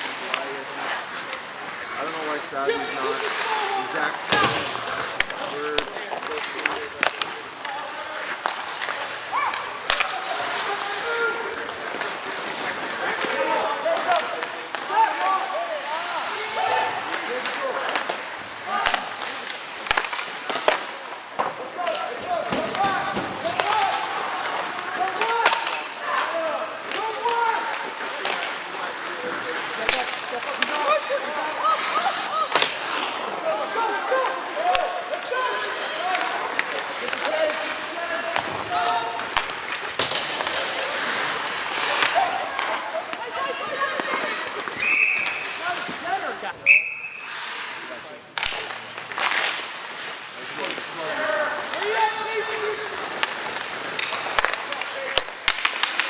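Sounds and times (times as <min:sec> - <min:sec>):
crowd talking and calling out: 0:00.0 - 0:56.0
hockey sticks and puck knocking: 0:03.2 - 0:15.6, 0:16.3 - 0:46.2, 0:48.3 - 0:56.0
referee whistle blasts: 0:44.8 - 0:45.4, 0:46.6 - 0:47.3.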